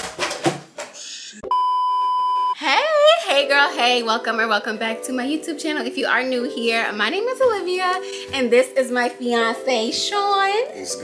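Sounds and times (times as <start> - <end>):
electronic censor beep: 1.4 - 2.6.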